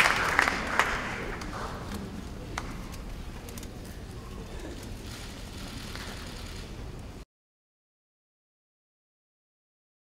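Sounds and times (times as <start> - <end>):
low rumble and hiss: 0.0 - 7.2.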